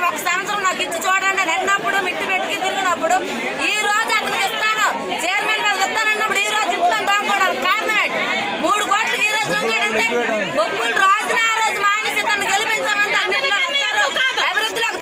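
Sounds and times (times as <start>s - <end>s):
people talking at once: 0.0s - 15.0s
woman talking: 0.0s - 15.0s.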